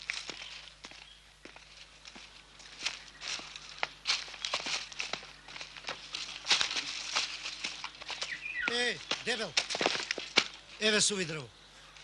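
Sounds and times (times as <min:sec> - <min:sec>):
footsteps crunching through dry leaves: 0:00.0 - 0:11.3.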